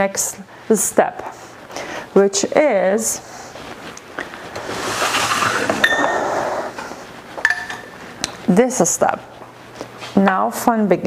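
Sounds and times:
soft rustle: 3.2 - 7.4
glass bottles and jars clinking: 5.8 - 6.2, 7.4 - 7.9.

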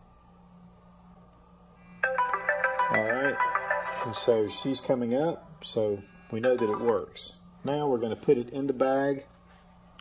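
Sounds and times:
smartphone ringtone: 2.0 - 5.2, 6.4 - 7.0.

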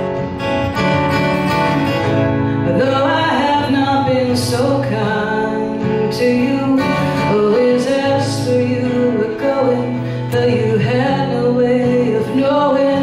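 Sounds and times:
strummed acoustic guitar: 0.0 - 13.0
woman singing: 2.6 - 13.0.

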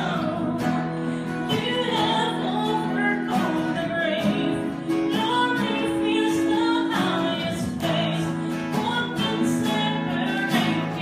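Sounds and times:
person singing: 0.0 - 11.0
strummed acoustic guitars: 0.0 - 11.0.

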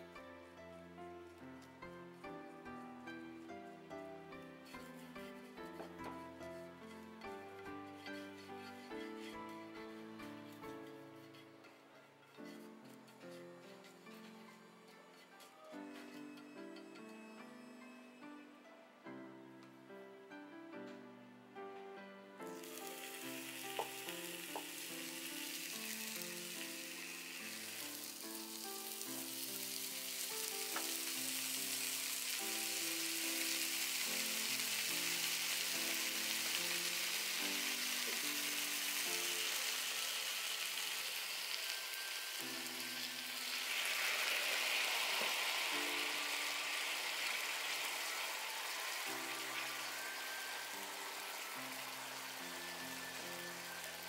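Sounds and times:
soft background music: 0.0 - 54.0
beef sizzling in a pan: 4.6 - 11.8, 22.4 - 54.0.

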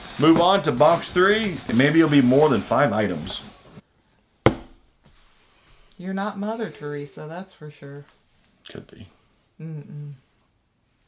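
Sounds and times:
sharp knock: 4.5 - 4.8.

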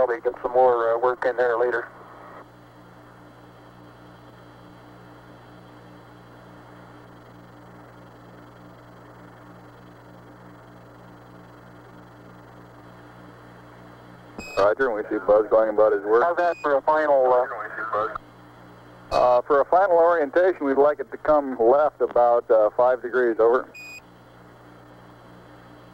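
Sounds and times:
radio hiss and static: 0.0 - 7.2, 14.4 - 24.0
pulsing buzzing tone: 5.8 - 14.8, 23.7 - 24.1.

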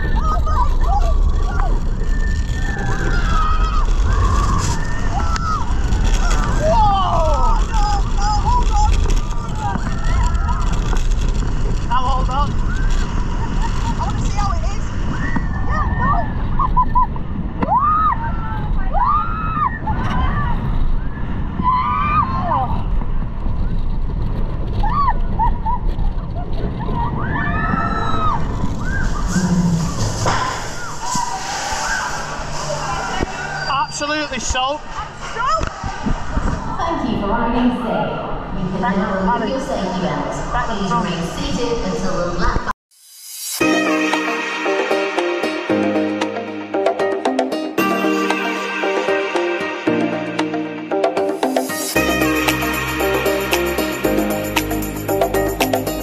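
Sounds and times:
wind buffeting microphone: 0.0 - 31.6, 34.8 - 42.7
riders screaming and yelling: 0.0 - 36.8
roller coaster train rumbling: 0.0 - 42.7.

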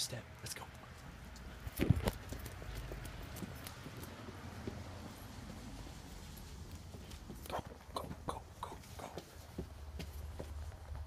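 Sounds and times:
quick footsteps on hard steps: 1.0 - 11.0.

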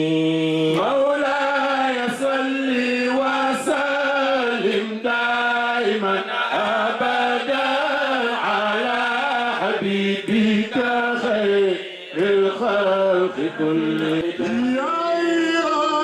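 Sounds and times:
man chanting unaccompanied: 0.0 - 16.0.

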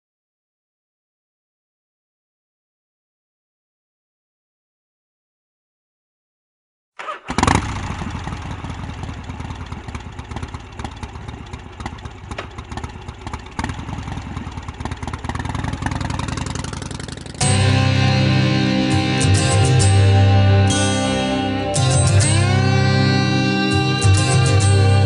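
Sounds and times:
motorcycle engine rumbling: 7.0 - 25.0
loud electric guitar music: 17.3 - 25.0.

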